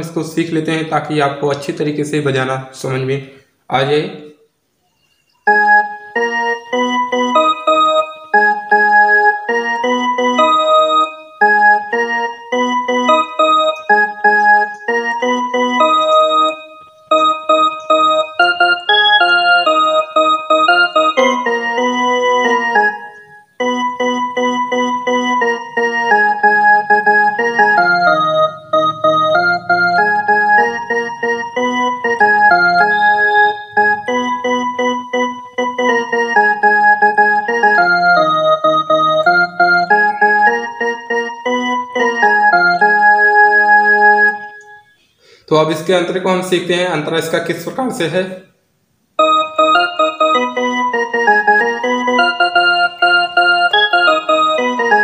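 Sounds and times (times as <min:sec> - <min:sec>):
keyboard playing single-note melody: 0:04.8 - 0:47.7, 0:49.2 - 0:55.0.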